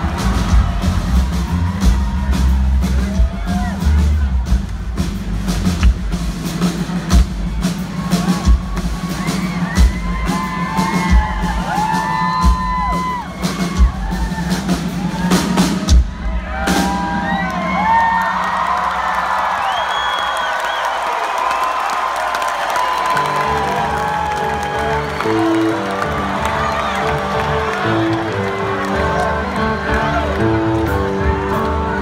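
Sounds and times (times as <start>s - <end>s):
crowd cheering and screaming: 0.0s - 4.6s, 7.4s - 32.0s
live rock band playing: 0.0s - 18.5s, 23.0s - 32.0s
drum kit beating: 0.0s - 19.6s, 22.5s - 32.0s.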